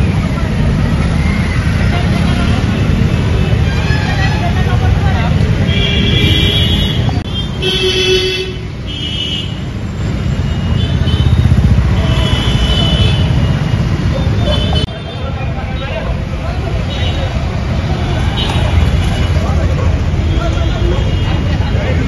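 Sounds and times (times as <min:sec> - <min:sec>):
people talking: 0:00.0 - 0:03.0, 0:03.7 - 0:07.4, 0:14.0 - 0:22.0
road traffic noise: 0:00.0 - 0:22.0.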